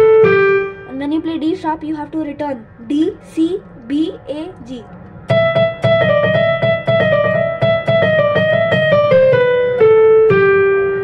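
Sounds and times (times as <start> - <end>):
keyboard piano melody: 0.0 - 11.0.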